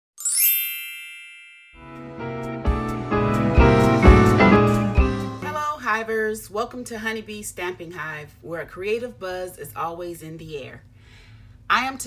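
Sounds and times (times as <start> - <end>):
bright shimmering chime: 0.2 - 2.2
intro music: 1.8 - 5.6.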